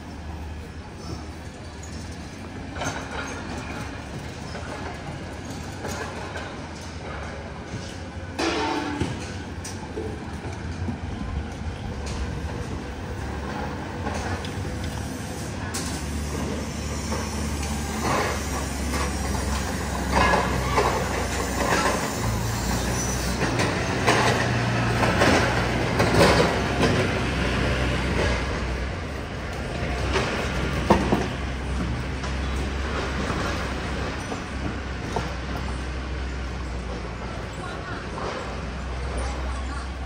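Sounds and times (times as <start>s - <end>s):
low traffic rumble: 0.0s - 40.0s
vehicles passing: 7.0s - 40.0s.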